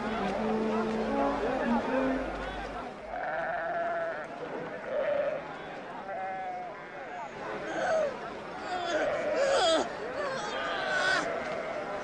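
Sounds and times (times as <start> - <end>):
livestock bleating: 3.1 - 4.2.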